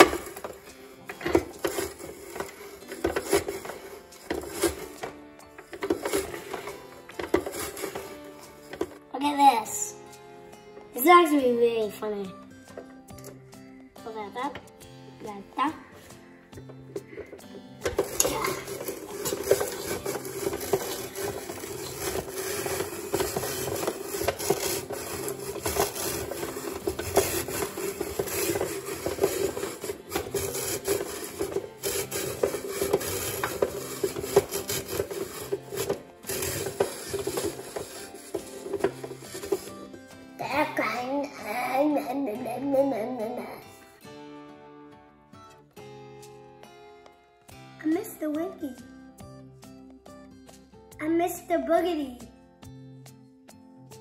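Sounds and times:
spiralizer grinding vegetable: 0:00.0 - 0:10.4, 0:12.4 - 0:13.8, 0:15.7 - 0:43.7
background music: 0:00.0 - 0:54.0.

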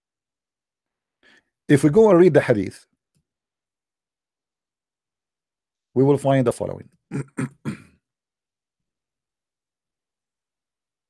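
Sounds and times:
man clearing his throat: 0:07.1 - 0:08.0.

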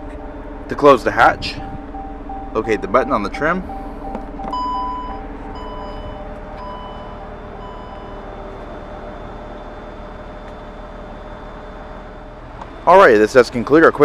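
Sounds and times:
liftgate motor hum: 0:00.0 - 0:12.9
warning beeps: 0:01.5 - 0:08.4.

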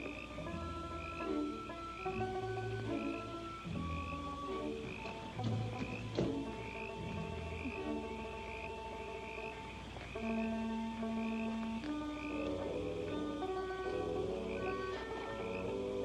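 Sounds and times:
frogs calling: 0:00.0 - 0:16.0
orchestral music with held notes: 0:00.0 - 0:16.0.

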